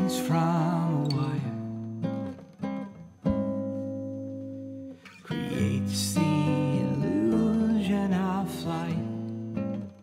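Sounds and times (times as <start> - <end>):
guitar chords strummed: 0.0 - 10.0.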